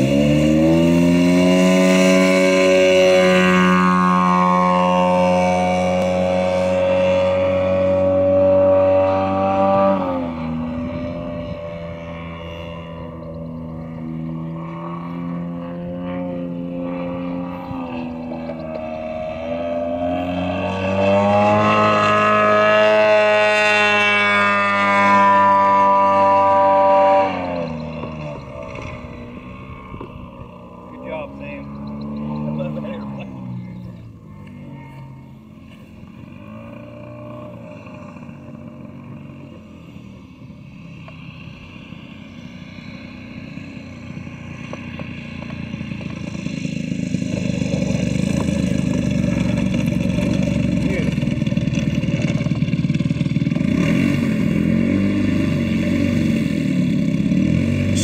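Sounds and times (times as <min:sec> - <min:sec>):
model airplane engine: 0:00.0 - 0:58.0.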